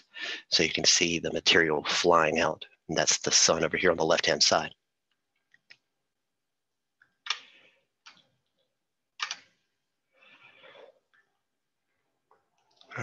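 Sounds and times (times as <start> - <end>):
computer mouse clicks: 7.0 - 8.3, 9.2 - 9.6.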